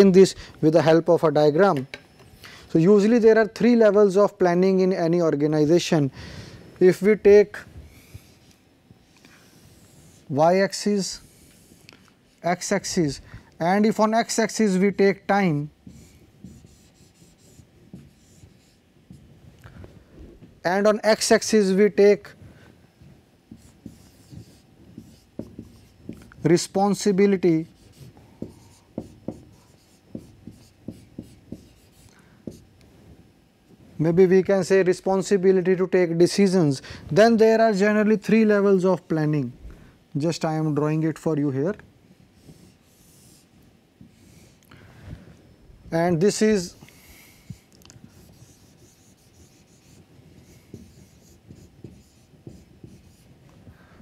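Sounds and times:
marker pen writing on whiteboard: 9.4s - 10.4s, 13.9s - 19.4s, 23.5s - 32.7s, 42.4s - 44.6s, 46.2s - 53.6s.

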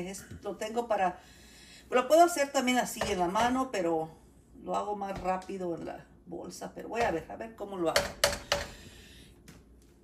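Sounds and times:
metal spoon knocking on pot: 7.9s - 8.7s.

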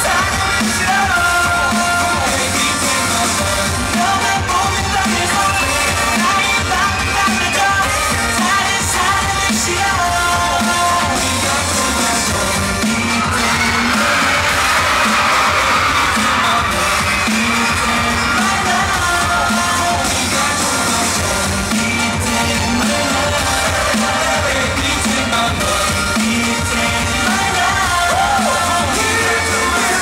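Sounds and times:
band singing into microphones: 0.0s - 30.0s
fans screaming: 0.0s - 30.0s
loud pop backing track: 0.0s - 30.0s.

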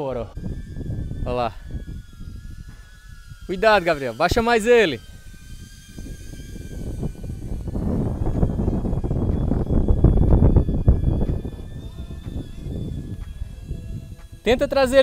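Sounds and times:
drone propellers whining: 0.0s - 15.0s
wind buffeting microphone: 0.0s - 15.0s.

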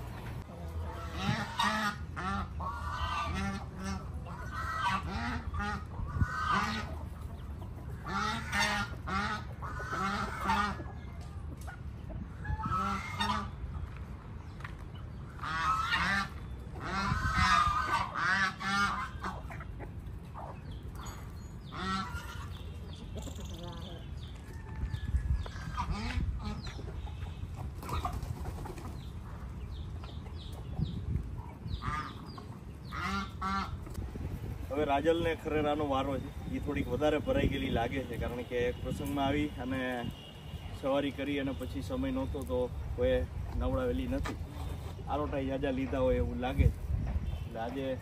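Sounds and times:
goose honking: 0.7s - 7.0s, 8.0s - 10.9s, 12.5s - 13.6s, 15.4s - 19.7s, 20.4s - 22.6s, 25.6s - 26.7s, 31.7s - 33.8s.

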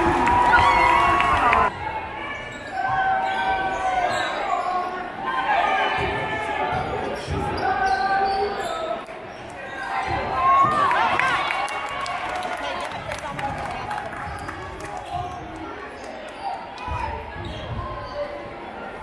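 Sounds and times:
crowd calling out: 0.0s - 2.0s.

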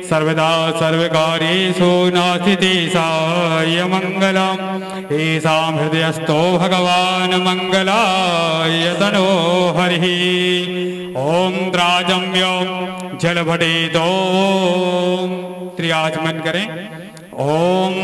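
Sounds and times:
man singing devotional song: 0.0s - 18.0s.

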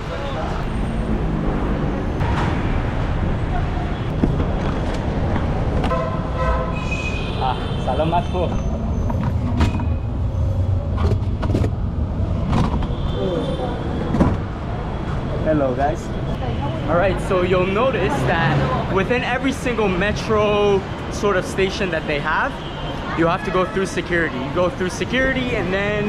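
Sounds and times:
traffic rumble: 0.0s - 26.0s
people talking: 7.4s - 8.6s, 15.4s - 26.0s.

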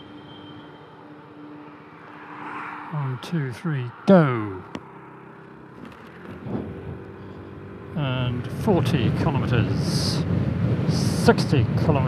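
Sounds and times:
scooter engine accelerating: 4.8s - 9.4s.

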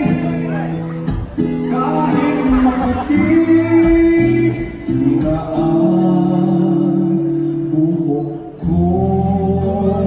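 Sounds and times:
man singing a ballad: 0.0s - 1.0s, 1.6s - 10.0s
backing music: 0.0s - 10.0s.

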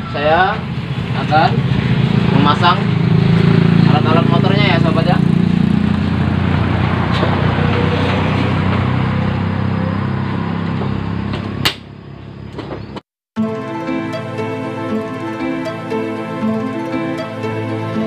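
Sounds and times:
sharp click: 11.6s - 11.9s
soft background music: 13.4s - 18.0s.

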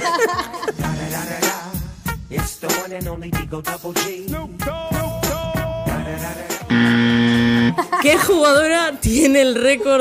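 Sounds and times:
music: 0.0s - 10.0s
loud buzzer tone: 6.7s - 7.8s.

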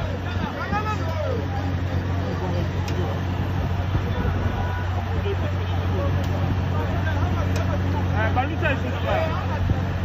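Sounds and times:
onlookers exclaiming and chattering: 0.0s - 10.0s
vehicle engine droning: 0.0s - 10.0s.

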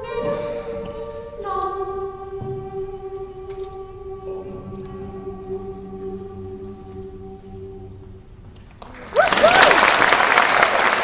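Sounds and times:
choir singing long chords: 0.0s - 8.4s.

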